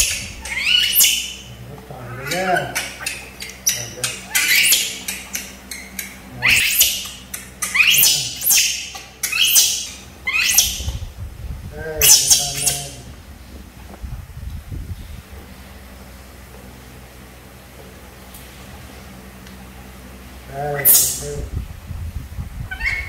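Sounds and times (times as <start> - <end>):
baby monkeys squealing: 0.0 - 11.0, 12.0 - 13.0, 20.7 - 21.3, 22.7 - 23.0.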